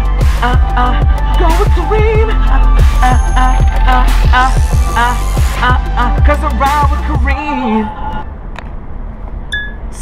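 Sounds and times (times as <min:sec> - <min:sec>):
short high beep: 0:09.5 - 0:09.8.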